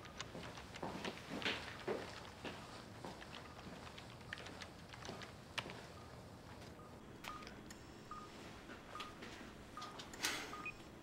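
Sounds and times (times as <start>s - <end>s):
patient monitor beeping: 2.6s - 11.0s.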